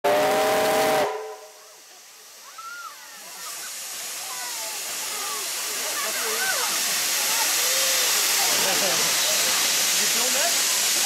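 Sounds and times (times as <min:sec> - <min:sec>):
steam locomotive whistle: 0:00.1 - 0:01.6
rush of steam: 0:00.1 - 0:11.0.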